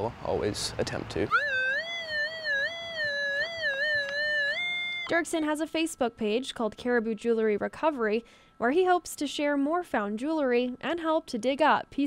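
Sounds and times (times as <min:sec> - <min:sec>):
metal detector wavering tone: 0:01.3 - 0:05.3.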